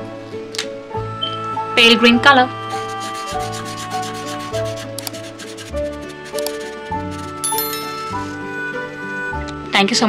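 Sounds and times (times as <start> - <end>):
light background music: 0.0 - 10.0
marker rubbing on paper: 2.8 - 7.4.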